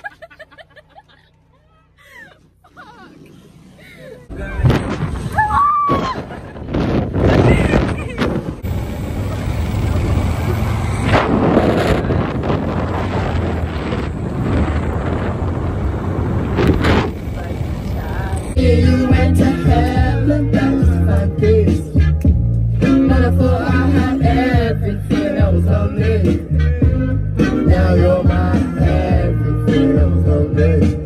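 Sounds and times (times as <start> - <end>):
wind buffeting microphone: 4.3 - 18.6.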